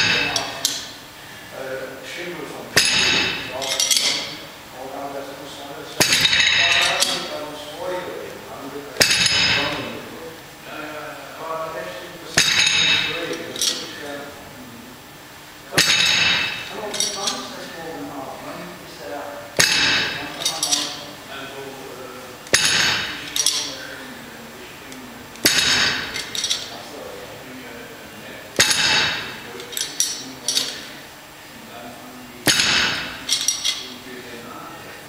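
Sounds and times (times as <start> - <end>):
metal clinks: 2.8 - 4.4, 12.4 - 14.0, 15.8 - 17.5, 19.6 - 21.0, 22.5 - 23.8, 25.4 - 26.7, 28.6 - 30.9, 32.5 - 33.9
metal weight plates clanking: 2.8 - 4.4, 6.0 - 7.3, 9.0 - 9.9, 12.4 - 14.0, 15.8 - 17.6, 22.5 - 23.8, 25.4 - 26.8, 32.5 - 34.0
metallic clinks: 25.5 - 26.7, 32.5 - 33.9.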